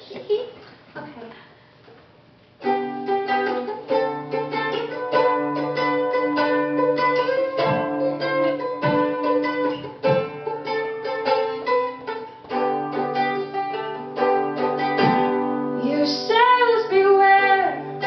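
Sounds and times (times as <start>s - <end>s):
plucked acoustic string instrument: 2.6s - 18.0s.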